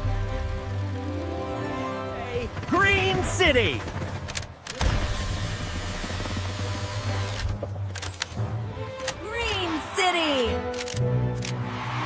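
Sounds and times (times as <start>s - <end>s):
background music: 0.0s - 12.0s
motorised camera whir: 5.0s - 7.6s
camera clicks: 10.6s - 11.6s.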